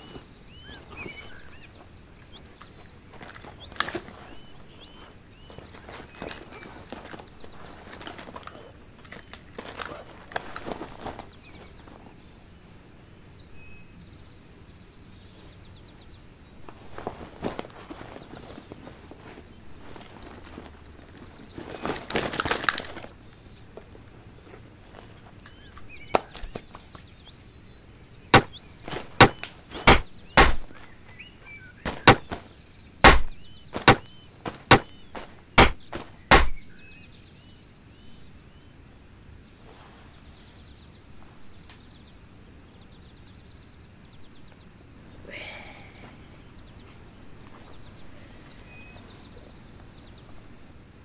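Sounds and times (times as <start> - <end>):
faint bird chirps: 0.0 - 23.7, 24.4 - 51.0.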